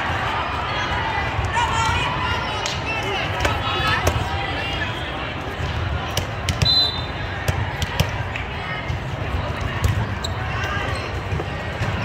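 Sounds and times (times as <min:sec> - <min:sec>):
spectator chatter echoing: 0:00.0 - 0:12.0.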